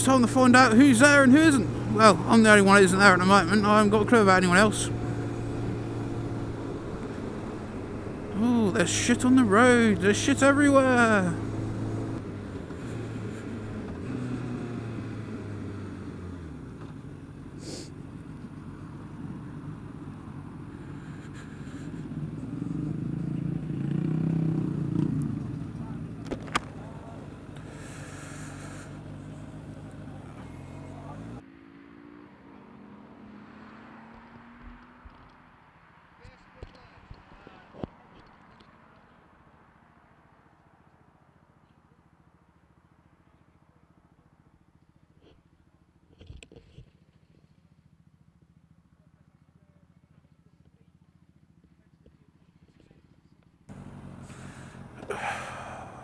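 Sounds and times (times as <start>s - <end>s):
motorcycle engine running: 0.0s - 31.4s, 42.1s - 56.0s
wind and road noise: 0.0s - 43.2s, 53.7s - 56.0s.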